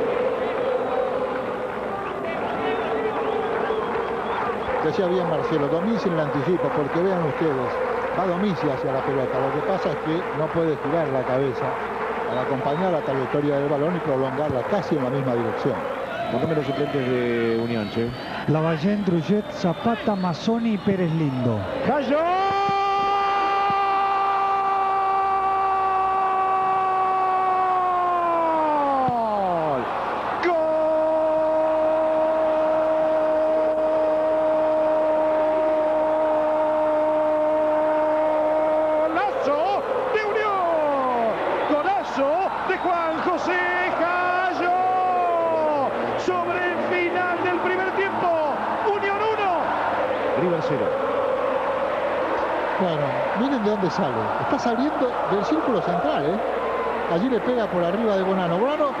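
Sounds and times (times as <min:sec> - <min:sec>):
commentator shouting goal cry: 0:18.6 - 0:49.7.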